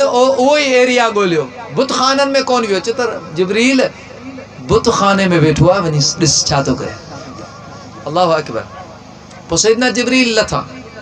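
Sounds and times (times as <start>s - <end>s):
man preaching over loudspeaker: 0.0s - 8.8s, 9.4s - 11.0s.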